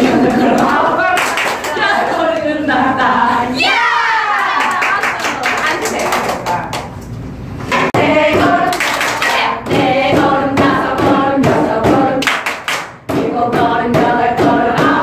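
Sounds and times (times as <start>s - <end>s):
women singing in unison: 0.1s - 3.9s, 7.8s - 12.4s, 13.1s - 15.0s
hand claps: 8.7s - 9.5s, 12.2s - 13.0s.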